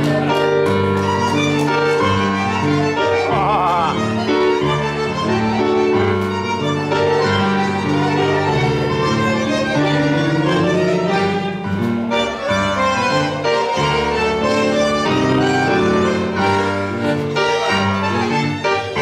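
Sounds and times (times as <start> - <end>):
tango orchestra playing: 0.0 - 19.0.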